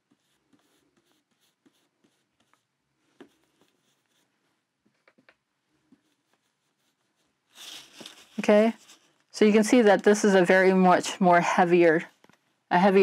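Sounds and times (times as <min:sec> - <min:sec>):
brush tapping through stencil: 0:00.0 - 0:04.3.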